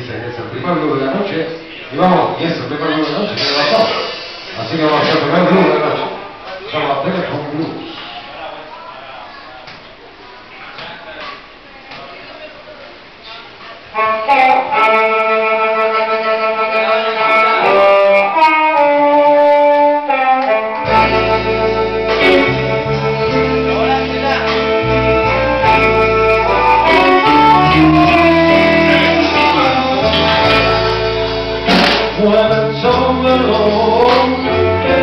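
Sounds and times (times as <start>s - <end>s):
live blues band playing: 13.9s - 35.0s.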